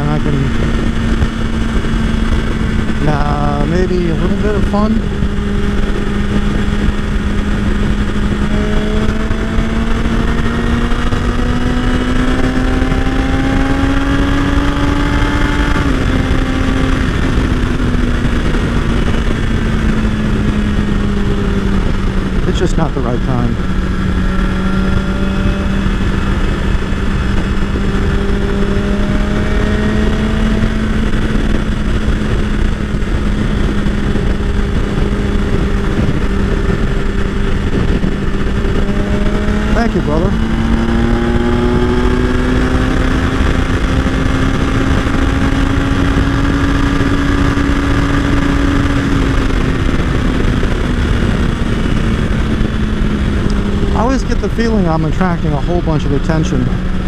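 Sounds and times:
heavy wind and road noise: 0:00.0 - 0:57.0
motorcycle engine cruising: 0:00.0 - 0:57.0.

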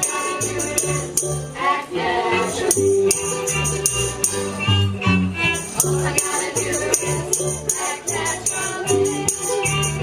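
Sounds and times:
group of voices singing: 0:00.0 - 0:03.3, 0:05.6 - 0:10.0
strummed string instruments: 0:00.0 - 0:10.0
bass line: 0:02.2 - 0:10.0.

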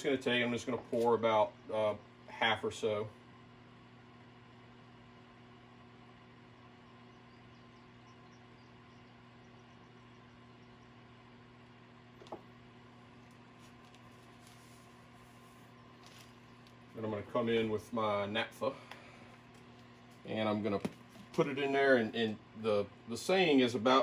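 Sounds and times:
low electrical hum: 0:00.0 - 0:24.0.

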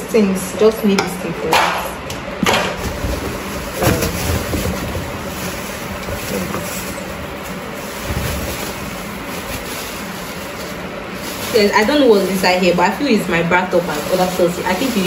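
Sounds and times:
plastic bags rustling: 0:02.5 - 0:15.0.

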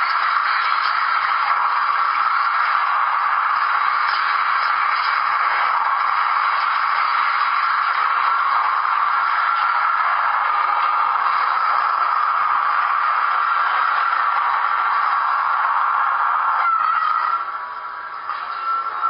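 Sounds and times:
video audio through small speakers: 0:00.0 - 0:19.0.

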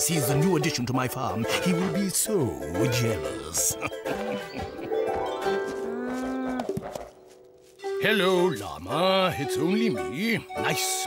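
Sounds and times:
light music: 0:00.0 - 0:11.0.

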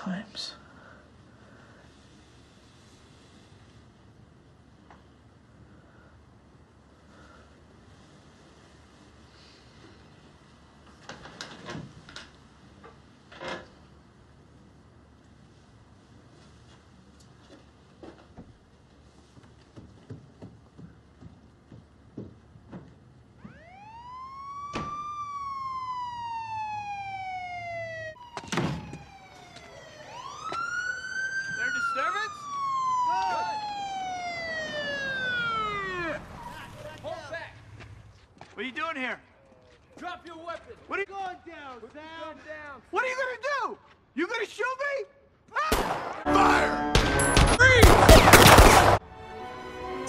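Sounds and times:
police siren wailing: 0:23.4 - 0:37.1, 0:46.3 - 0:50.0
rapid pistol gunfire: 0:47.8 - 0:49.0.

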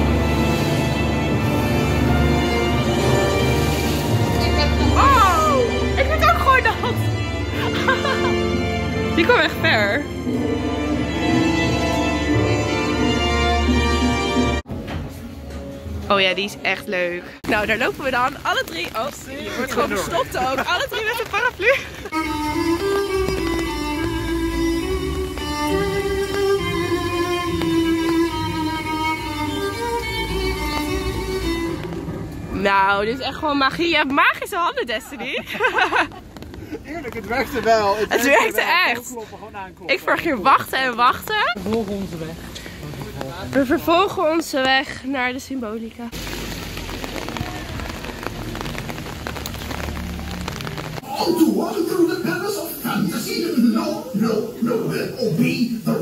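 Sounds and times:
rain pattering on umbrellas: 0:00.0 - 0:10.0, 0:17.2 - 0:56.0
violin melody with strings: 0:00.0 - 0:14.6, 0:22.1 - 0:32.6.

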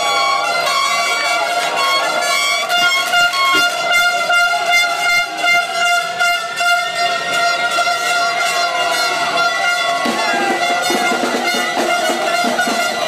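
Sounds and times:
celebrating crowd bustle: 0:00.0 - 0:13.0
horns droning: 0:00.0 - 0:13.0.

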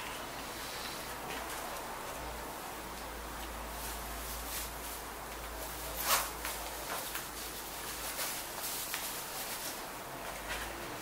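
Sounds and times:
faint background hiss: 0:00.0 - 0:11.0.

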